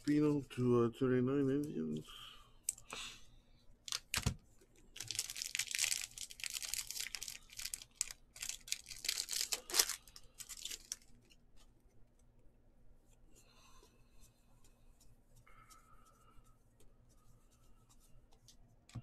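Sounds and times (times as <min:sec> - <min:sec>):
wrapper crinkling rustle: 0:03.9 - 0:04.3, 0:04.9 - 0:11.4.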